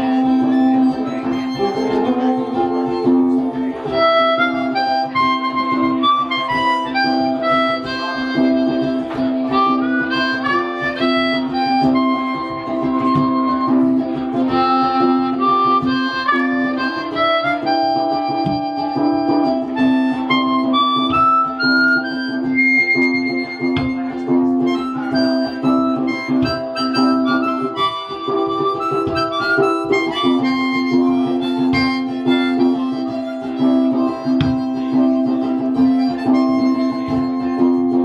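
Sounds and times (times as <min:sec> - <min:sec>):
harmonica solo: 0:00.0 - 0:38.0
strummed ukulele: 0:00.0 - 0:38.0.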